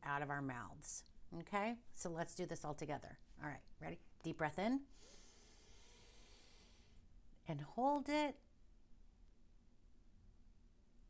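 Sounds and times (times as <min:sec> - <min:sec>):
breath drawn in through nose: 0:04.9 - 0:07.0.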